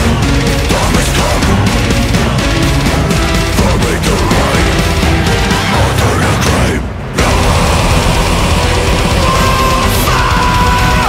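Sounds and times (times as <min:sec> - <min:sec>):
death metal band playing: 0:00.0 - 0:11.0
low rumble: 0:00.0 - 0:11.0.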